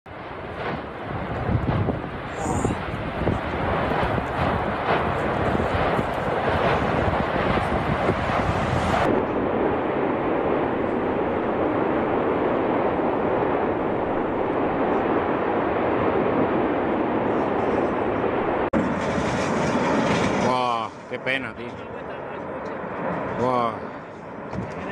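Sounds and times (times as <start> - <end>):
volcanic vent roaring: 0.1 - 24.9
sharp lava bursts: 0.4 - 21.8.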